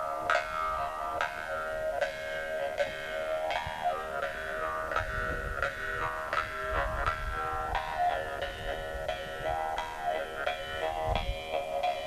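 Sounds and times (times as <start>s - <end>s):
jaw harps droning and plucked: 0.0s - 12.0s.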